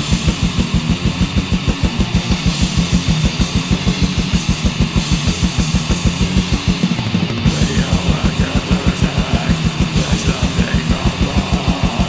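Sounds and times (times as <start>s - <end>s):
distorted electric guitars: 0.0s - 12.0s
rapid bass drum beats: 0.0s - 12.0s.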